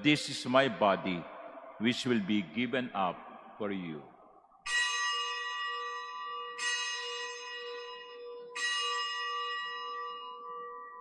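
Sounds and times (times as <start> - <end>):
altar bell ringing: 0.5 - 11.0.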